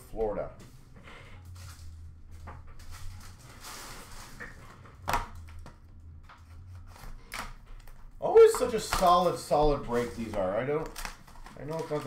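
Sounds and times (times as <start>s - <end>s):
low steady hum: 0.0s - 12.0s
cardboard and wrappers rustling: 0.7s - 12.0s.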